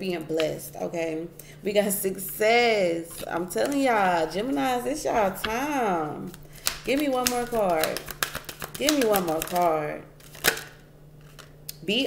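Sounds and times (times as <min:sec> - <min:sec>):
card snap: 0:06.3 - 0:11.5.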